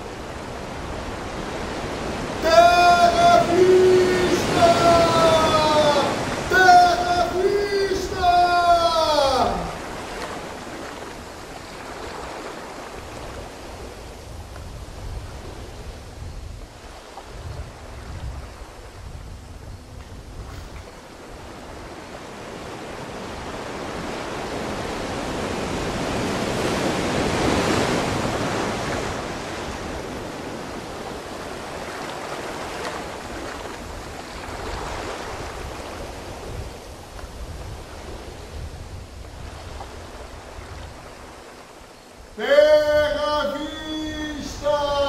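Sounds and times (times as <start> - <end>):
sea waves washing in: 0.0 - 45.0
man's voice: 2.4 - 9.8, 42.4 - 45.0.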